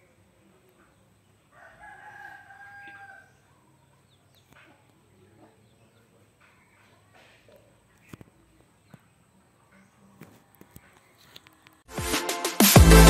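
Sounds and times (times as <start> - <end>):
rooster crowing: 1.5 - 3.4.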